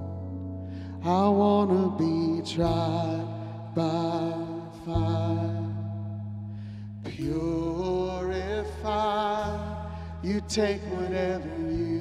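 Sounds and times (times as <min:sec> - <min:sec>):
electric bass guitar: 0:00.0 - 0:12.0
man singing worship song: 0:00.8 - 0:06.3, 0:06.9 - 0:12.0.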